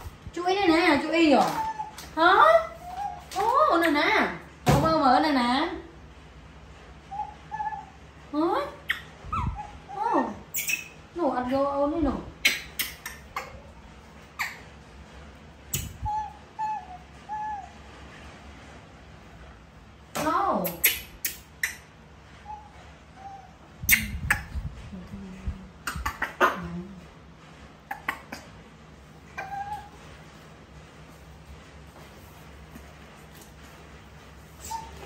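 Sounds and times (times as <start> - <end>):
baby macaque coo calls: 15.7 - 17.7, 29.4 - 29.9.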